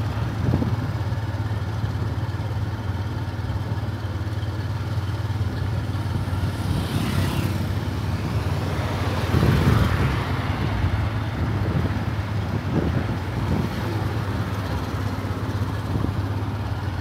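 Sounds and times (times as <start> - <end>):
motorcycle running: 0.0 - 17.0
wind rumble on microphone: 9.0 - 14.6.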